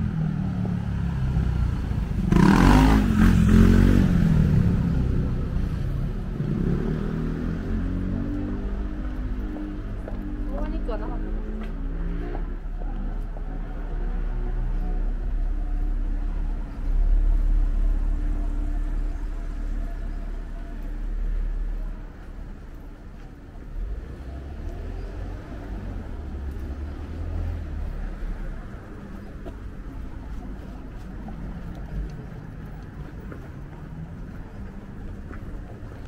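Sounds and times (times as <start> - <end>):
car engine rumbling: 0.0 - 36.0
cars passing: 0.0 - 36.0.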